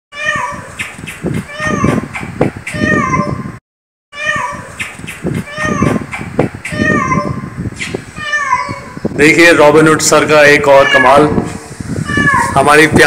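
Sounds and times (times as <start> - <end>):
cat meowing: 0.1 - 0.8, 1.5 - 2.0, 2.7 - 3.4, 4.1 - 4.8, 5.4 - 6.0, 6.7 - 7.5, 8.2 - 9.0, 10.7 - 11.4, 12.0 - 12.6
man talking: 9.2 - 11.5, 12.6 - 13.0.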